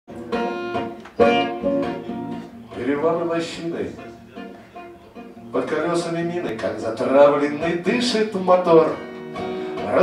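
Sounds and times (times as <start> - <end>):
acoustic guitar strumming chords: 0.1 - 10.0.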